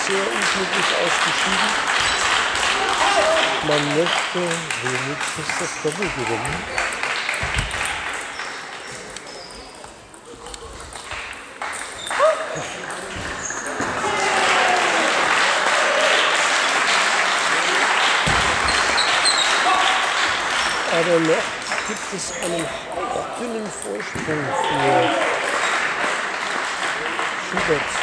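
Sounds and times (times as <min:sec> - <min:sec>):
players' voices and shouts: 0:00.0 - 0:07.0, 0:12.0 - 0:16.3, 0:17.6 - 0:25.7
crowd noise: 0:00.0 - 0:28.0
table tennis balls clicking: 0:01.4 - 0:13.8.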